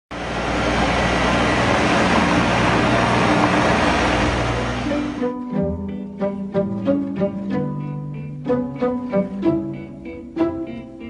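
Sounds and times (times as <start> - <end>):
tractor engine running: 0.1 - 7.6
loud broad hiss: 0.2 - 5.3.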